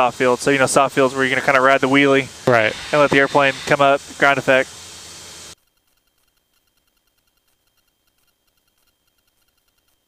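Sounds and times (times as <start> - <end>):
intercom microphone hiss: 0.0 - 5.6
faint ticks: 5.6 - 10.0.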